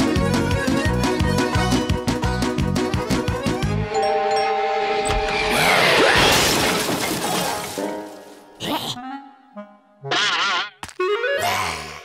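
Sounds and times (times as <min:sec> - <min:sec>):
held music notes: 0:00.1 - 0:05.5
crashing shattering sound effect: 0:05.2 - 0:08.2.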